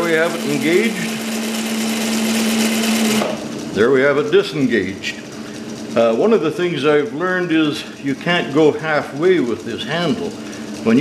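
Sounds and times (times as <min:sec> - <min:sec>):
clutch and chain mechanical whir: 0:00.0 - 0:11.0.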